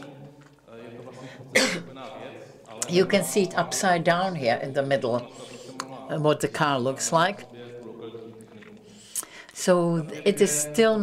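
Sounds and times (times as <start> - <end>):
loud sharp cough: 1.5 - 1.9.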